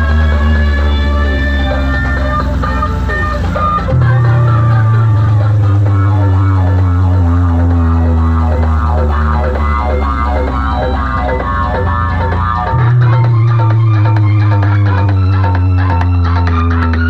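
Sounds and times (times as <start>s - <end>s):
deep steady bass drone: 0.0s - 17.0s
loud music through speakers: 0.0s - 17.0s.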